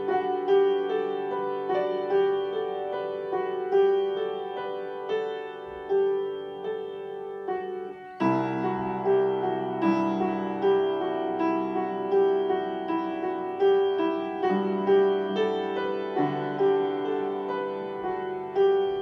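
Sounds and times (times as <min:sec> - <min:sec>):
upright piano melody: 0:00.0 - 0:19.0.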